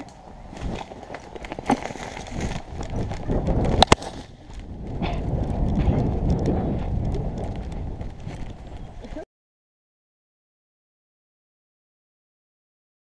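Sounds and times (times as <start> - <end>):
camera handling rumble: 0.5 - 9.2.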